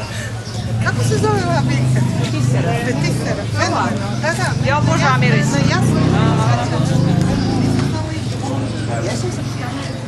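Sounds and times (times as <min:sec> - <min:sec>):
tourist group talking: 0:00.0 - 0:10.0.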